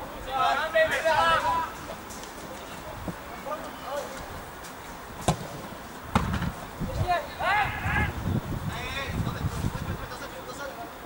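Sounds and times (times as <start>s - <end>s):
players shouting: 0.0s - 4.2s, 7.0s - 8.3s
football being kicked: 5.2s - 6.6s.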